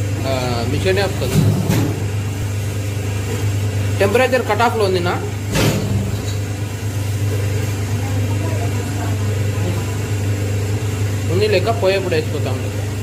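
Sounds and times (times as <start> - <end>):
machine humming: 0.0 - 13.0.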